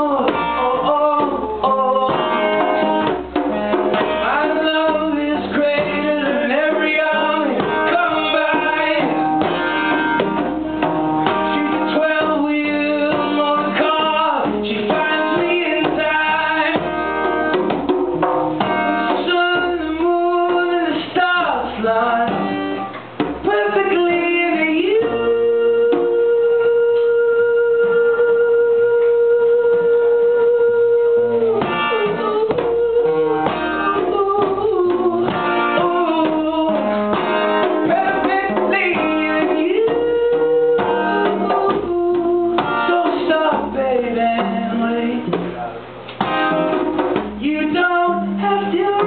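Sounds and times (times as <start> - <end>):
man singing: 0.0 - 46.1, 46.7 - 49.0
strummed acoustic guitar: 0.0 - 49.0.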